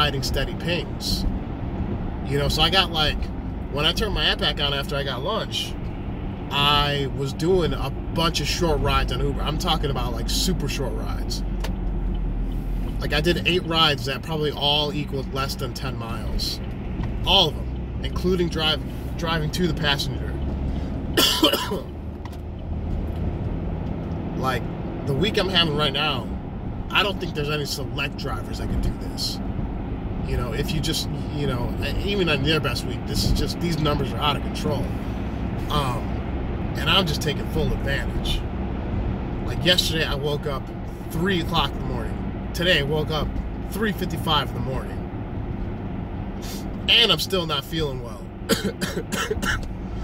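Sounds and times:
low rumble of car cabin: 0.0 - 50.0
man coughing harshly: 21.2 - 21.9, 48.5 - 49.7.

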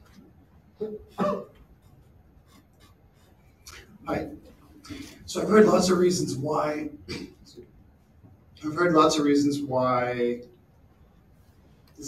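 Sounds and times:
person coughing: 0.8 - 1.6, 7.1 - 7.4.

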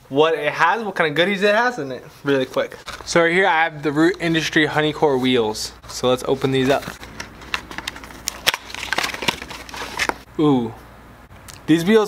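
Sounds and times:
cardboard snapping: 6.7 - 10.2.

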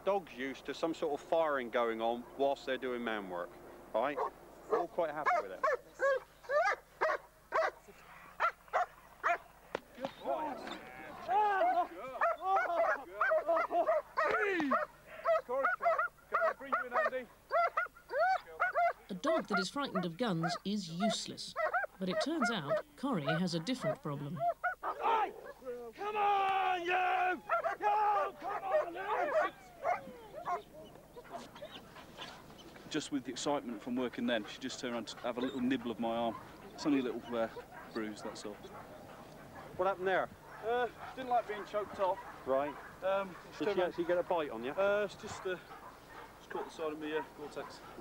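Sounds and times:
dogs barking and snarling: 1.8 - 25.9, 26.8 - 48.0
man calling: 10.0 - 19.9, 24.8 - 31.8, 33.0 - 38.8.

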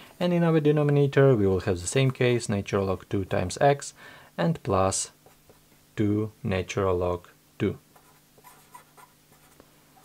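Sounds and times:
marker pen scratching on paper: 8.0 - 10.0.

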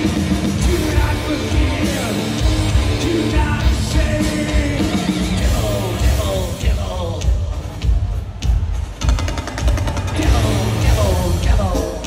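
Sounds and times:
heavy metal band playing live: 0.0 - 12.0
rapid drum hits: 0.0 - 12.0.

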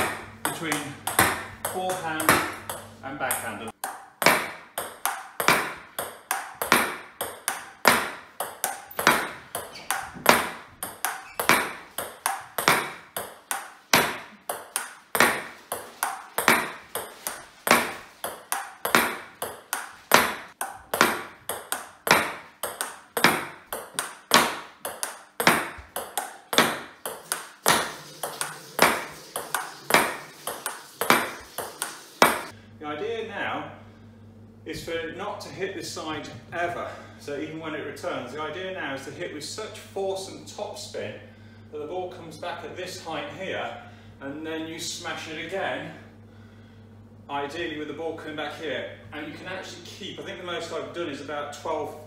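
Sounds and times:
table tennis ball clicking: 0.4 - 17.4.

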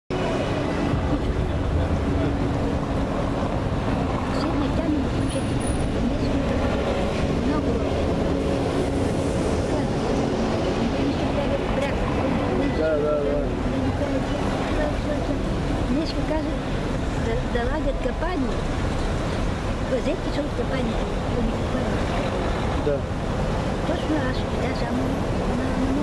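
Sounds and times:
faint indistinct voices: 0.1 - 26.0
street traffic rumble: 0.1 - 26.0.

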